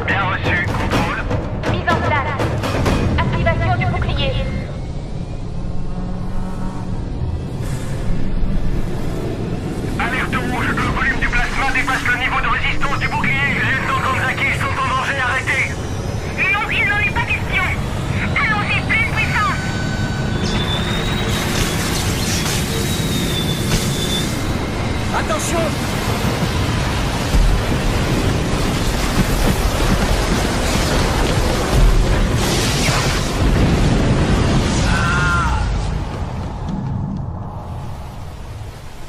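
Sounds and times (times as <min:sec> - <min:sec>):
steady low rumble: 0:00.2 - 0:20.2, 0:35.6 - 0:39.0
voices: 0:10.0 - 0:19.8.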